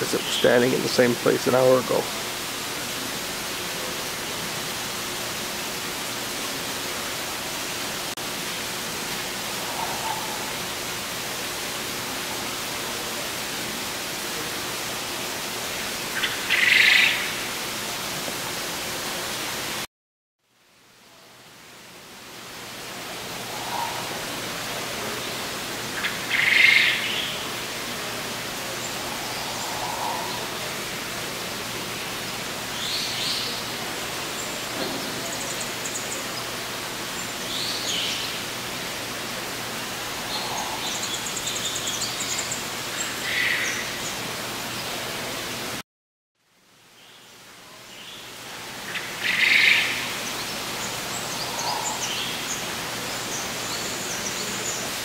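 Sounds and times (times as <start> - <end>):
steady background hiss: 0.0 - 19.9, 20.5 - 45.8, 46.4 - 55.0
short bird calls: 23.4 - 24.4, 28.8 - 30.7.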